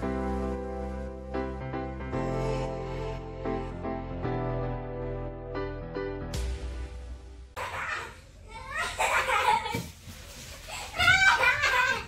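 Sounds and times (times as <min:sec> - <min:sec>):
girl laughing: 0:07.6 - 0:09.9, 0:10.7 - 0:12.0.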